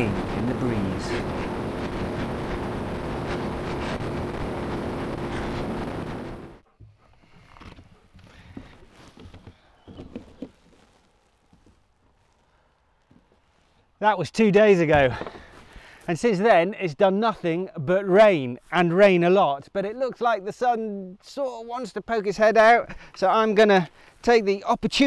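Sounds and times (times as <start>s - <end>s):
motorcycle engine at top speed: 0.0s - 6.6s
wind roar: 0.0s - 6.6s.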